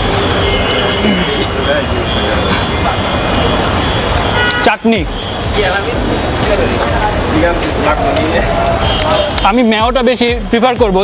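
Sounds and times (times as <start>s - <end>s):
faint voices: 0.0s - 4.3s
rushing street noise: 0.0s - 11.0s.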